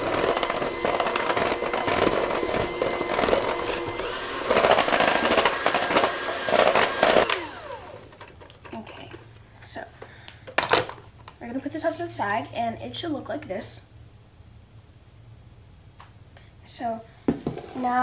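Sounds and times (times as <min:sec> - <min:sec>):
electric hand mixer whining: 0:00.0 - 0:08.3
beaters churning batter in bowl: 0:00.0 - 0:09.0.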